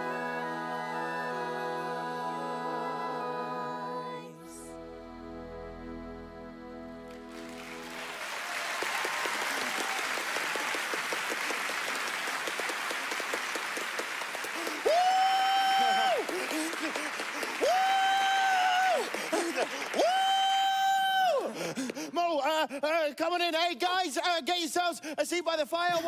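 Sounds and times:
audience applauding: 7.1 - 22.2
performer's long high calls: 14.4 - 22.2.

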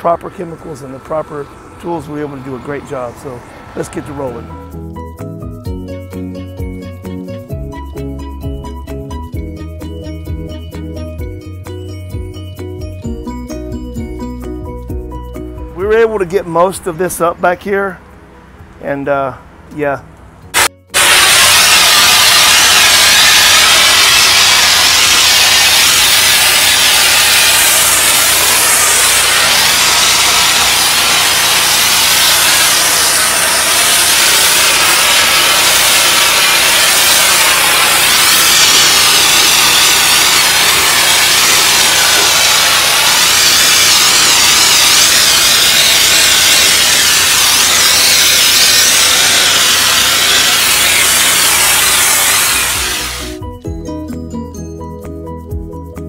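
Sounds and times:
pressure washer jet spattering pavement: 20.6 - 53.3
machine hum: 20.6 - 53.4.

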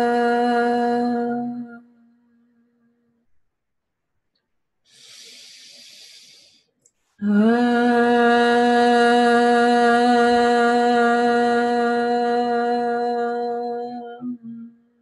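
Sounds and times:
woman chanting a long vowel: 0.0 - 1.9, 7.2 - 14.8
breathy hiss: 4.9 - 6.7.

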